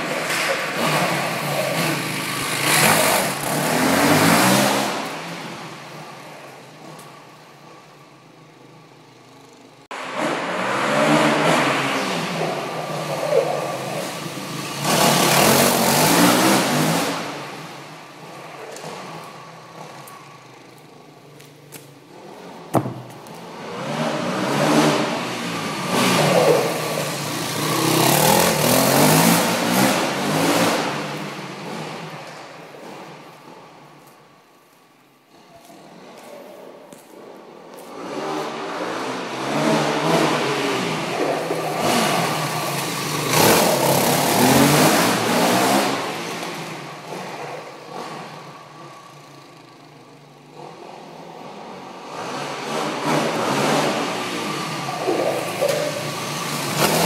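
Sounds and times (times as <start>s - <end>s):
dirt bike engine revving: 0.0s - 5.4s, 10.0s - 17.9s, 22.7s - 32.2s, 38.0s - 48.5s, 50.6s - 57.0s.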